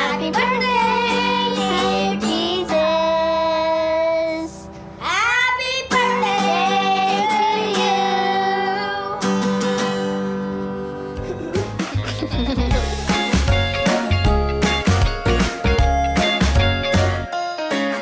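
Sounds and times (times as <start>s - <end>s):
children singing: 0.0s - 3.8s, 5.1s - 9.3s
acoustic guitar strumming: 0.0s - 18.0s.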